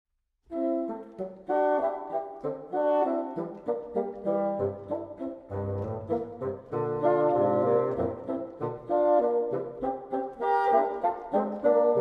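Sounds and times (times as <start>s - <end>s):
bassoon playing notes: 0.5s - 12.0s.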